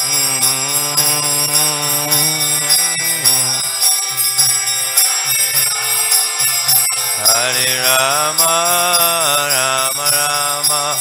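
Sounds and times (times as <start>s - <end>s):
harmonium chord: 0.0s - 11.0s
jingling hand cymbals: 0.0s - 11.0s.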